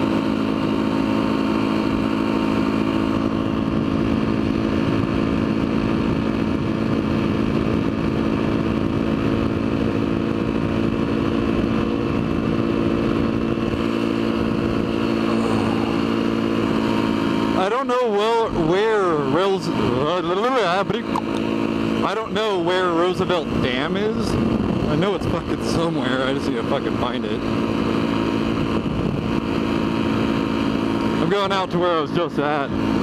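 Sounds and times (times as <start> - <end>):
motorbike engine cruising: 0.0 - 33.0
wind and road rush: 0.0 - 33.0.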